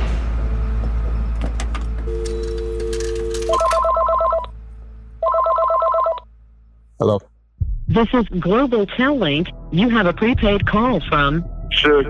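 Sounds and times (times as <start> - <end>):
telephone ringing: 2.1 - 4.5, 5.2 - 6.3.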